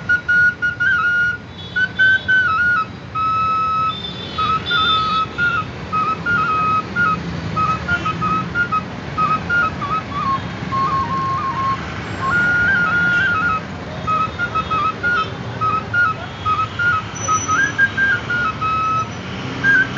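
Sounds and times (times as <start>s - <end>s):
flute melody: 0.0s - 19.9s
street traffic hum: 0.0s - 19.9s.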